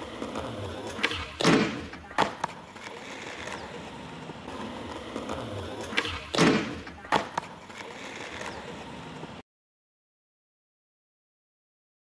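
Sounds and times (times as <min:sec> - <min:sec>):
skateboard clacks: 0:00.0 - 0:09.4
skateboard wheels rolling on concrete: 0:00.0 - 0:09.4.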